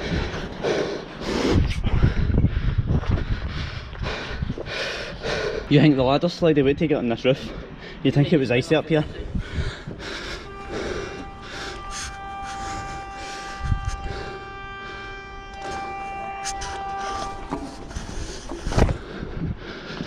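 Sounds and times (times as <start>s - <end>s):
steady high-pitched tone: 9.9s - 19.0s.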